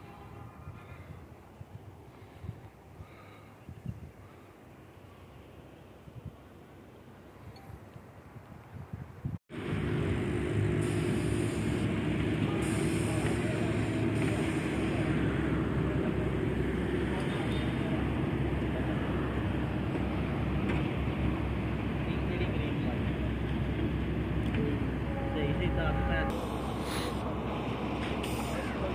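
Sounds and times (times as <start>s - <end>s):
engine running with low hum: 9.5s - 28.9s.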